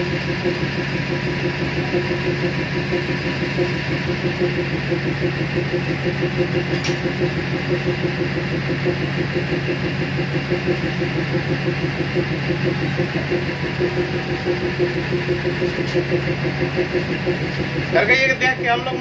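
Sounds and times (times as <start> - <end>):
locomotive diesel engine idling: 0.0 - 19.0.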